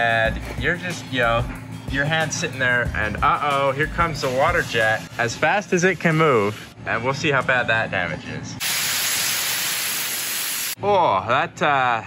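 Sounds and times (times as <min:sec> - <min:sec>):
waterjet stream hissing: 0:08.6 - 0:10.8.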